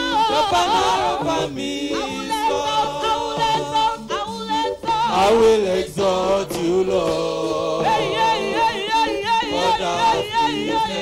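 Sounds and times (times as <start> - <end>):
gospel praise singing: 0.0 - 11.0.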